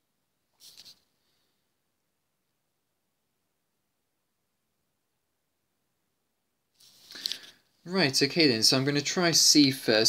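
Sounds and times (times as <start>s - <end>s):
faint rustle: 6.8s - 7.6s.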